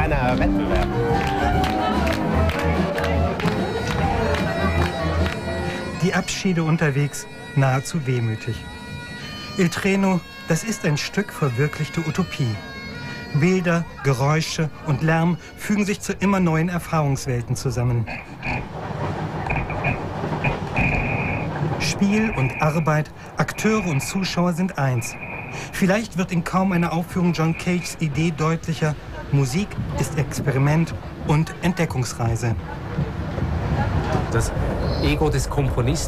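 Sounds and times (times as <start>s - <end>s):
crowd clapping along: 0.0s - 6.2s
train carriage rumble: 0.0s - 7.0s, 16.1s - 36.0s
sustained reedy tones: 19.4s - 28.5s.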